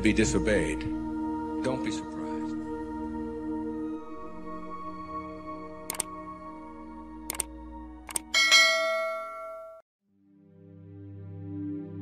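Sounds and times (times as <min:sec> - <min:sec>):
bell-like chime ringing: 0:08.4 - 0:09.8.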